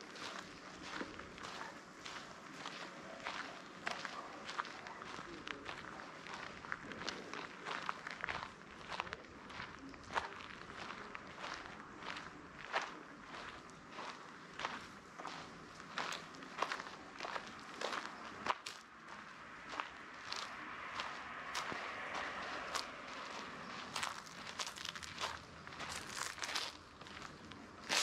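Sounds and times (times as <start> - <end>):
footsteps: 0.0 - 28.0.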